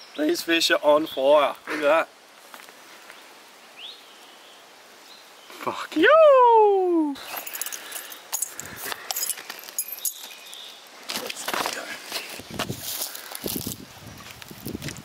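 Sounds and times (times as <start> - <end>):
handling clicks and rustles: 7.2 - 15.0.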